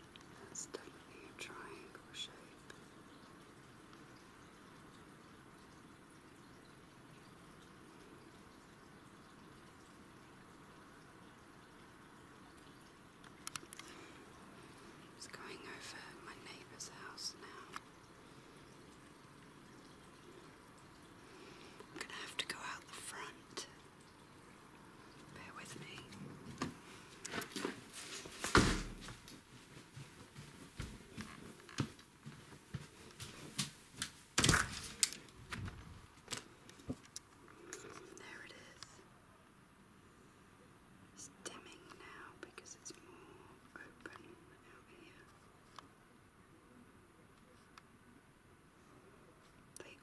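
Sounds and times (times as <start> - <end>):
person whispering: 0.4 - 2.7, 15.2 - 17.8, 21.9 - 23.8, 25.3 - 26.2, 37.6 - 39.0, 41.2 - 45.4, 49.8 - 50.0.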